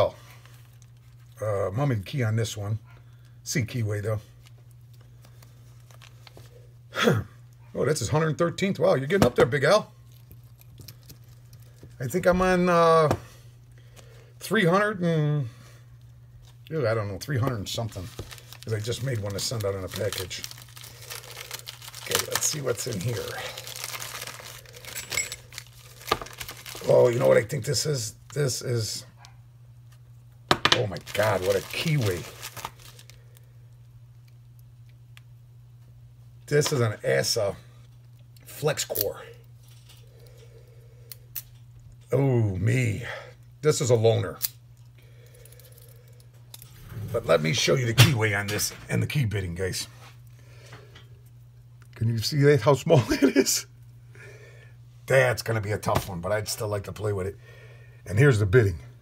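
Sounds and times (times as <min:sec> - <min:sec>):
steady low hum: 0:00.0 - 0:59.0
plastic wrapping crinkling: 0:04.2 - 0:06.6, 0:17.2 - 0:27.7, 0:30.7 - 0:33.5.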